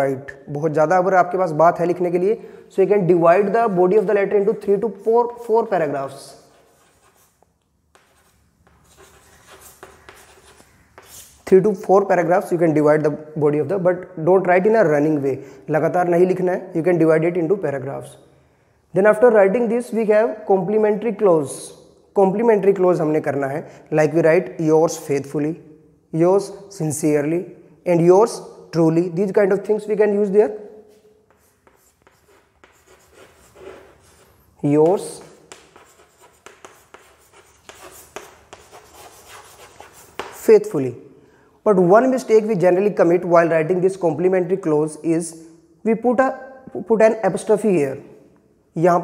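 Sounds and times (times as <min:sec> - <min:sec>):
chalk scratching on blackboard: 0:04.0 - 0:11.5, 0:30.9 - 0:40.5
chalk tapping: 0:04.0 - 0:11.5, 0:30.9 - 0:40.7
light chalk taps: 0:34.8 - 0:40.4.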